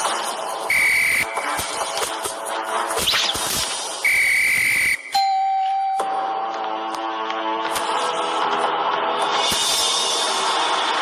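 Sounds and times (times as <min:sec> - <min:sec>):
high whistle-like tone: 0:00.7 - 0:01.4, 0:04.0 - 0:06.2.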